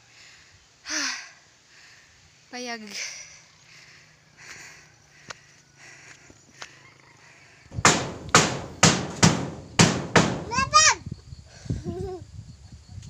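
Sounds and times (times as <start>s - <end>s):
loud sharp knocks: 7.7s - 10.9s.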